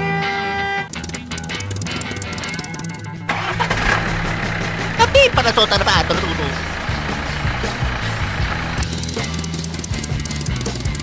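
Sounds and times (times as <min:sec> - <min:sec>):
engine starting and running: 0:01.0 - 0:10.5.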